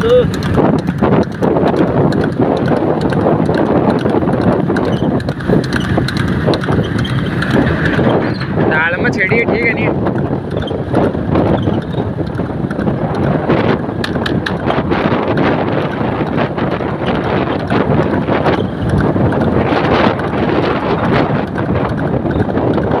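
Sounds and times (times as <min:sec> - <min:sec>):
motorcycle engine running: 0:00.0 - 0:23.0
wind buffeting microphone: 0:00.0 - 0:23.0.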